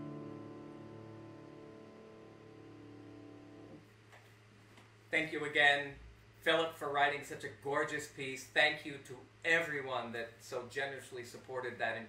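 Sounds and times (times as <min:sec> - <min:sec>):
piano chord ringing: 0:00.0 - 0:03.8.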